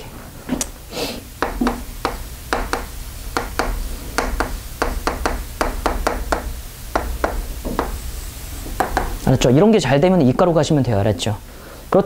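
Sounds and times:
chalk tapping on blackboard: 1.4 - 9.2.

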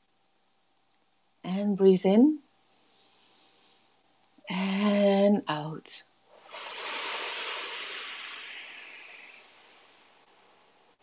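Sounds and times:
woman breathing out slowly: 6.4 - 10.1.

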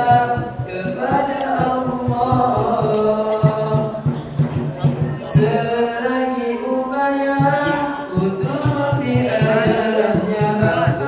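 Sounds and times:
young man chanting: 0.0 - 11.0.

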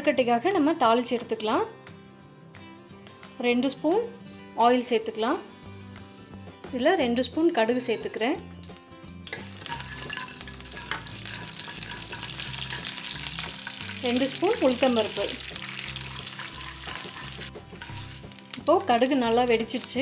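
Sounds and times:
mustard seeds sizzling in hot oil: 7.6 - 20.0
wooden spatula stirring: 15.4 - 18.0.

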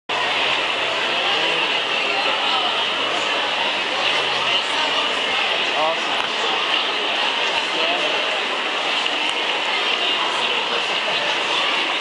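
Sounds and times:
faint voices: 0.1 - 12.0.

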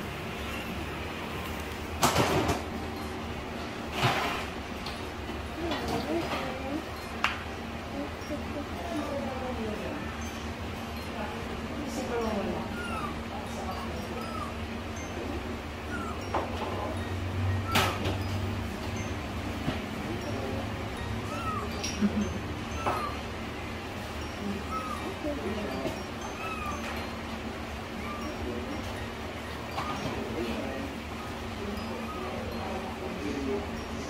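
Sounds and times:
kitten mewing: 12.6 - 14.7, 15.8 - 16.3, 21.3 - 22.0, 22.8 - 23.2.

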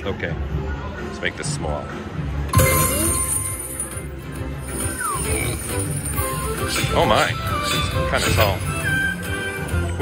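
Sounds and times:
slot machine bonus music: 2.5 - 10.0.

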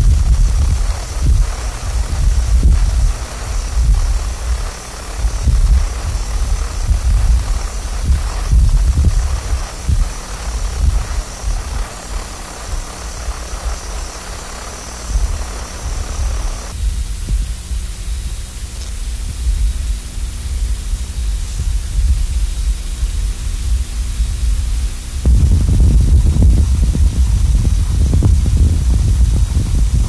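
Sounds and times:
wind buffeting microphone: 0.0 - 18.4, 19.0 - 30.0.

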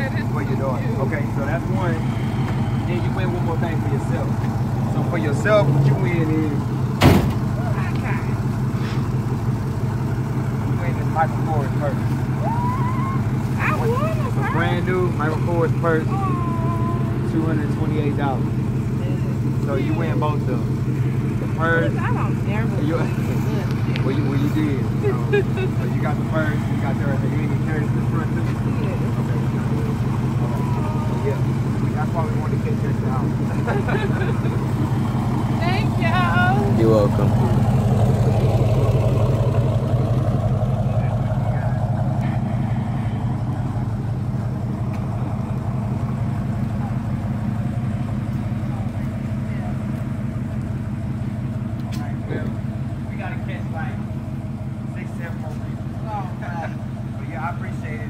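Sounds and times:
vehicle engine idling: 0.0 - 58.0
faint voices: 10.6 - 38.5
faint voices and calls: 21.0 - 33.6.

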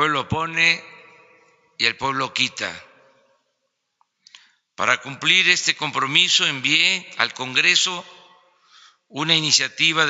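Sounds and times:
man speaking into a microphone: 0.0 - 3.0, 4.8 - 10.0
mouth click: 4.2 - 4.5
short intake of breath: 8.6 - 9.0.

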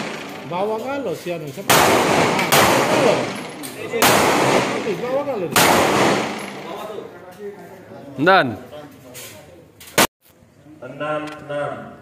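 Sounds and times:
handgun shots echoing: 1.7 - 7.0.

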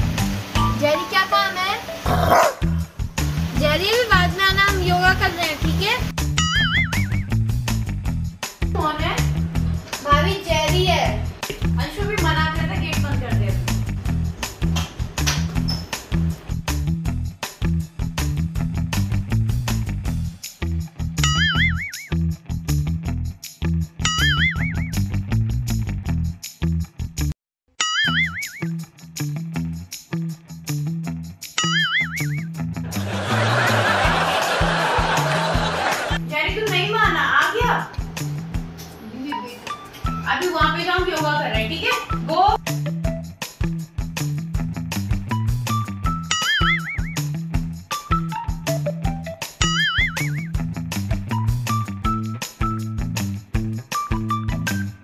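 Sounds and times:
background music: 0.0 - 26.2, 28.1 - 55.0
dog barking: 2.0 - 2.7
cartoon boing sound effect: 6.4 - 7.3, 21.2 - 22.1, 24.1 - 24.9, 27.8 - 28.7, 31.6 - 32.5, 46.3 - 47.2, 49.6 - 50.5.

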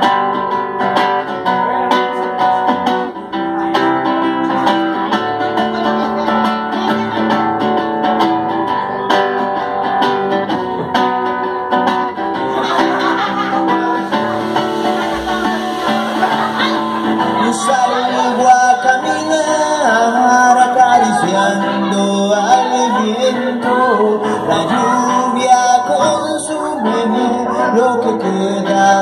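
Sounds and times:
acoustic guitar strumming: 0.0 - 29.0.

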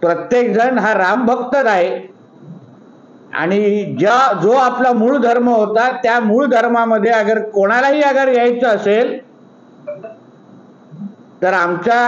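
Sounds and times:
faint room hiss: 0.0 - 12.0
high electronic beeps: 9.8 - 10.3.

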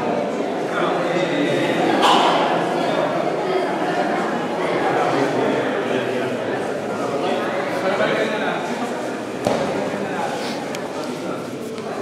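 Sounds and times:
crowd chatter in a hall: 0.0 - 12.0
sharp thump: 9.4 - 9.8.

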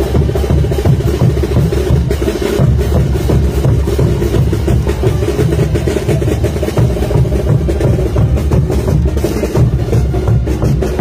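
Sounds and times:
bass drum beating: 0.0 - 11.0
street band playing dance music: 0.0 - 11.0.

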